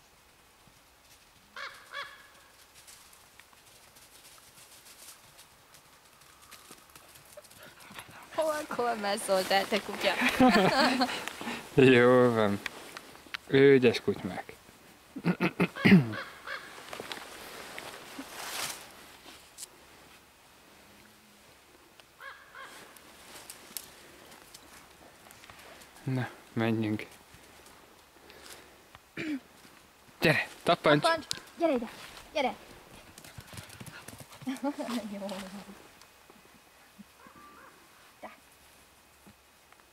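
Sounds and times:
dog paws running on dry leaves: 1.0s - 10.3s
dog paws on leafy trail: 1.0s - 13.3s, 29.5s - 35.9s.

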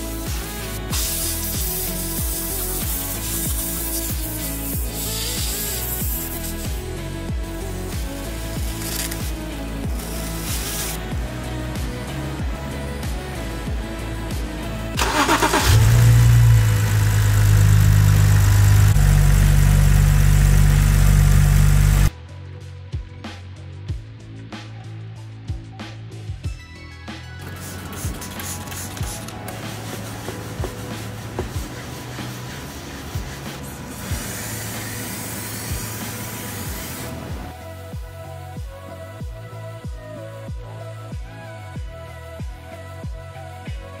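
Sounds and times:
aerosol spray hiss: 0.0s - 6.8s, 8.4s - 11.0s, 27.8s - 37.4s
music with kick drum beat: 0.0s - 14.6s, 22.8s - 26.8s, 29.0s - 31.8s, 36.7s - 44.0s
car engine starting and idling: 14.8s - 22.1s.

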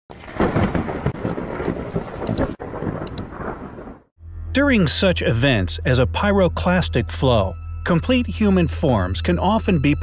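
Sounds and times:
thunder-like rumble with sharp cracks: 0.1s - 4.1s.

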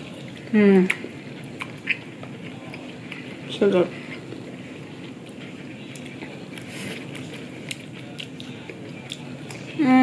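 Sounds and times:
person chewing food: 0.0s - 9.8s.

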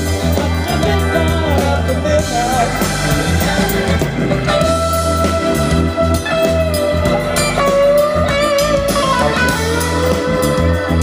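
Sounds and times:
bass: 0.0s - 11.0s
drums: 0.0s - 11.0s
electric guitar lead: 0.0s - 11.0s.

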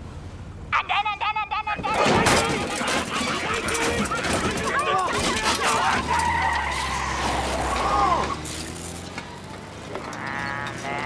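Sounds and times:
speaker box clattering: 2.0s - 5.9s
tyre squeal: 2.4s - 11.0s
car engine pulling away: 5.3s - 11.0s
drawn-out rising call: 5.4s - 11.0s.

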